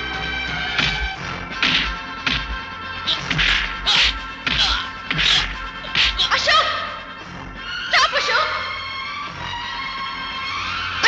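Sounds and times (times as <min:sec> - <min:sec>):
swishing punch hits: 0:01.6 - 0:06.3.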